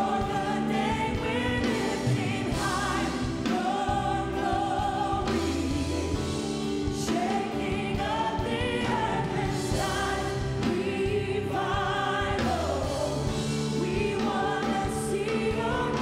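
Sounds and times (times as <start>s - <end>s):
backing singers in harmony: 0.0s - 16.0s
band accompaniment: 0.0s - 16.0s
woman leading gospel song: 0.0s - 16.0s.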